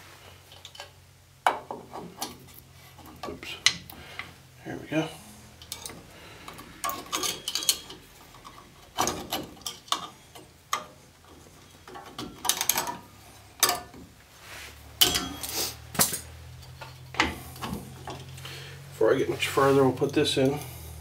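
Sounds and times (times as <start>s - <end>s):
metal clinks of brake hardware: 5.6s - 10.8s.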